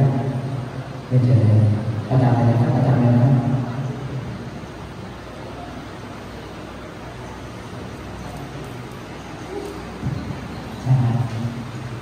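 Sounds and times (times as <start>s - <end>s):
man speaking: 0.0s - 4.0s.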